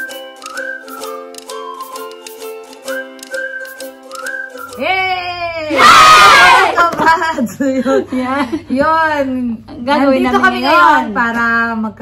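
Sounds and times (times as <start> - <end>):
women shouting a greeting: 4.8 - 6.8.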